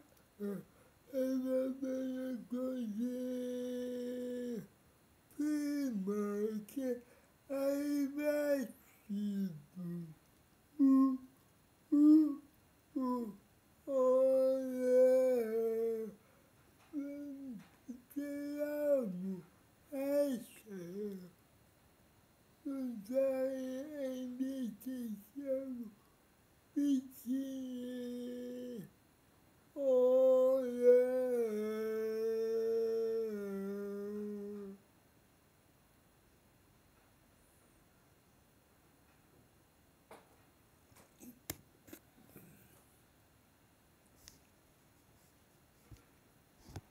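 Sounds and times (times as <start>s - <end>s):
man singing unaccompanied: 0.0s - 4.7s, 5.3s - 16.2s, 16.9s - 21.4s, 22.6s - 26.0s, 26.7s - 29.0s, 29.7s - 34.8s.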